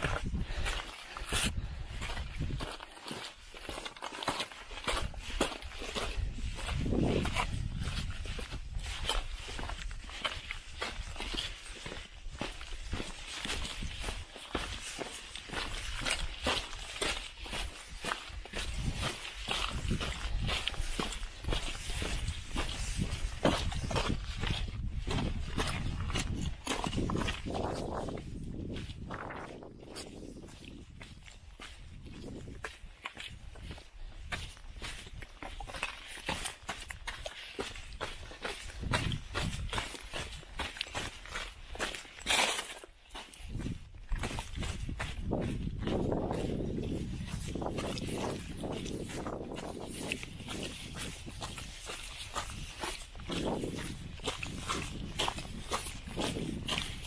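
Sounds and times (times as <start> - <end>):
footsteps on rocky trail: 0.0 - 57.0.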